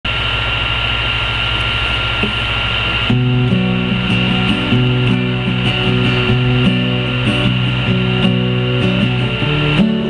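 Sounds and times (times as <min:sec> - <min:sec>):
high-pitched feedback whine: 0:00.1 - 0:10.0
low hum and hiss: 0:00.1 - 0:10.0.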